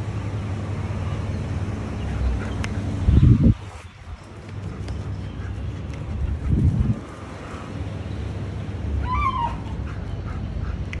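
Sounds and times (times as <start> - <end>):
dog whining: 9.0 - 10.0.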